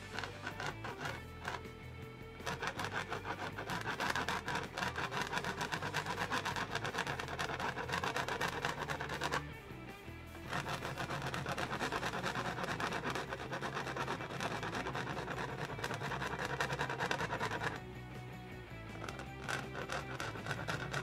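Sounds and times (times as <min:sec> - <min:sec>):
paintbrush scrubbing on canvas: 0:00.0 - 0:01.7, 0:02.4 - 0:09.5, 0:10.4 - 0:17.8, 0:18.9 - 0:21.0
background music: 0:00.0 - 0:21.0.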